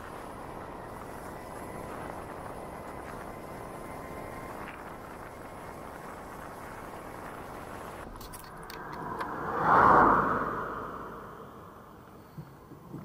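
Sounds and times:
road and wind noise: 0:00.0 - 0:13.0
vehicle passing close by: 0:08.4 - 0:12.2.

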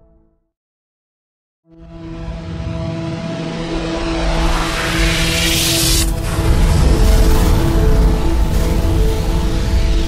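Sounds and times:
rush of noise: 0:03.1 - 0:10.0.

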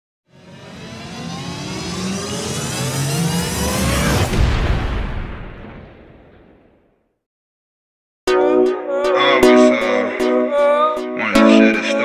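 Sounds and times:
tones sweeping upward in pitch: 0:00.3 - 0:04.3, 0:08.3 - 0:12.0
low drone: 0:00.3 - 0:04.4.

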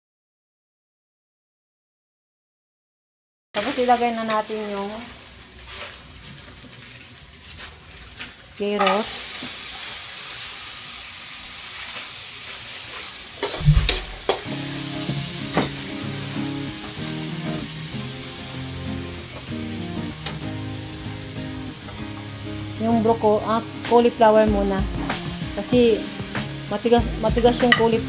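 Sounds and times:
carrots sizzling in hot oil: 0:03.6 - 0:28.0
metal spatula stirring in wok: 0:11.8 - 0:14.5
loud knock: 0:13.6 - 0:14.4.

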